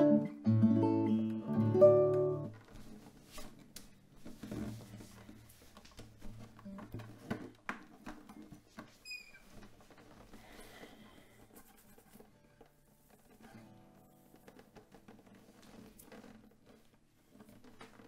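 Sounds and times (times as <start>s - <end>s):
classical guitar low notes: 0.0s - 2.7s
faint rustling of hair: 2.6s - 18.0s.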